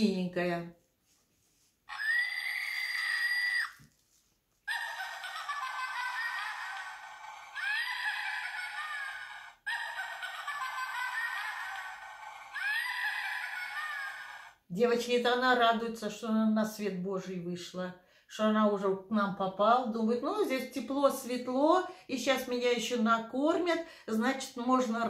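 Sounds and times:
tinny recorded witch laugh: 4.7s - 14.6s.

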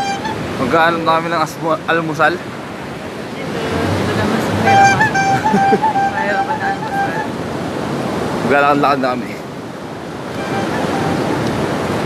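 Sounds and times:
high-pitched wavering tone: 0.0s - 0.4s, 3.6s - 7.4s, 10.3s - 11.5s
surf washing on beach: 0.0s - 12.0s.

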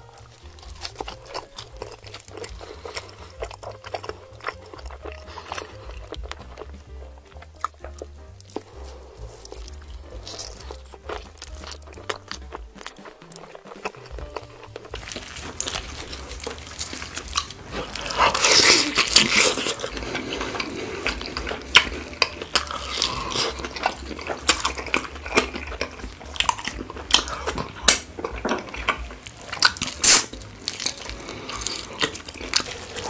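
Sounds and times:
wet sticky eating smacks: 0.0s - 33.0s.

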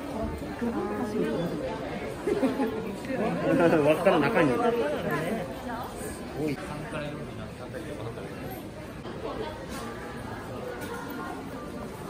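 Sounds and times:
indistinct chatter of voices: 0.0s - 12.0s.

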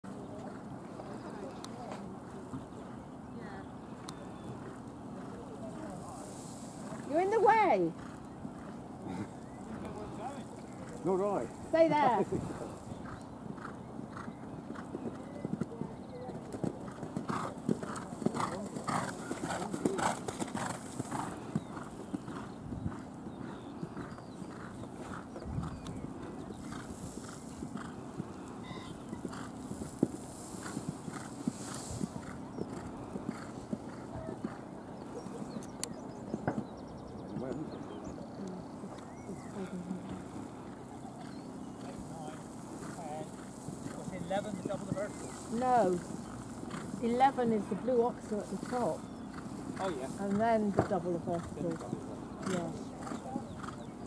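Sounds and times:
horse hoofbeats cantering: 6.8s - 38.0s, 38.7s - 54.0s.

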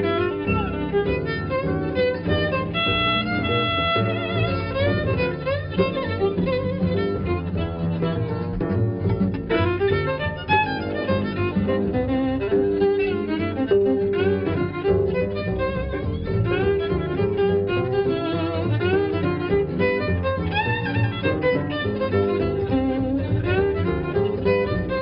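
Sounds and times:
double bass: 0.0s - 25.0s
guitars: 0.0s - 25.0s
swing jazz violin melody: 0.0s - 25.0s.

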